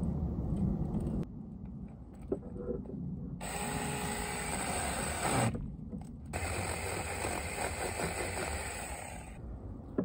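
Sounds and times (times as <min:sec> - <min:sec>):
electric chainsaw cutting wood: 0:06.4 - 0:09.4.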